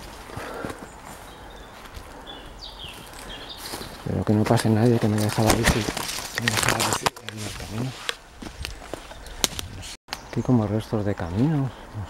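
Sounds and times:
footsteps through dry leaves and twigs: 0.0 - 10.0.

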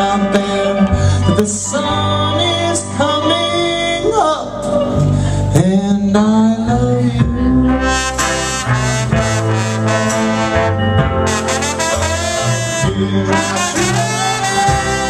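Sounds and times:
bass and drums: 0.0 - 15.0
trombone sliding lead line: 7.8 - 15.0.

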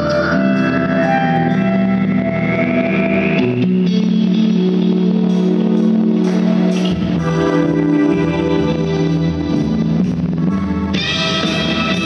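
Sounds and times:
distorted electric guitar: 0.0 - 12.0
live rock band: 0.0 - 12.0.

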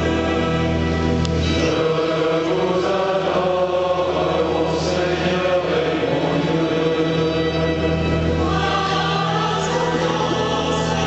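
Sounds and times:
choir singing chant-like lines: 0.0 - 11.0.

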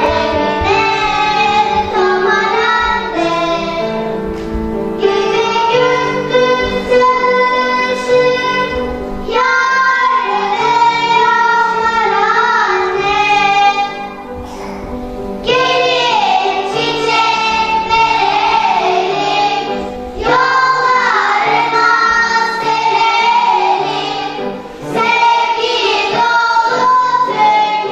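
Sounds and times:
children singing: 0.0 - 27.9
instrumental accompaniment: 0.0 - 27.9.

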